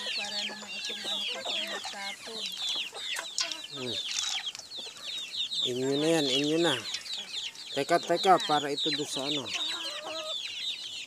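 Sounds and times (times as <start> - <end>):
chickens clucking and peeping: 0.0 - 11.0.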